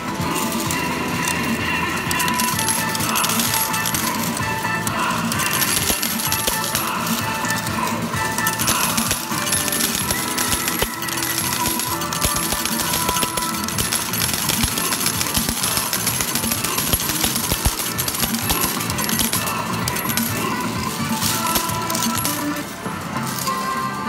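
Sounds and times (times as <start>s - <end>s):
electronic arcade music: 0.0s - 24.0s
metal medals clinking: 0.3s - 24.0s.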